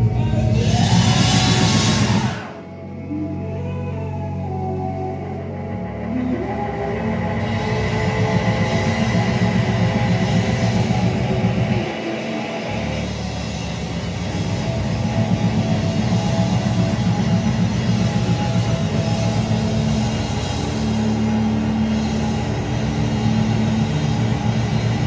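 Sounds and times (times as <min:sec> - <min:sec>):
drum kit: 0:00.0 - 0:02.7, 0:06.7 - 0:25.0
electric guitar: 0:00.0 - 0:25.0.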